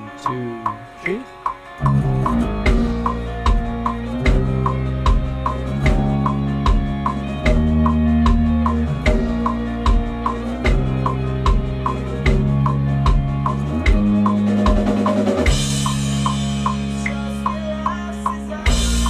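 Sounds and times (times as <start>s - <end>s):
drum track: 0.0s - 19.0s
electric bass playing: 0.0s - 19.0s.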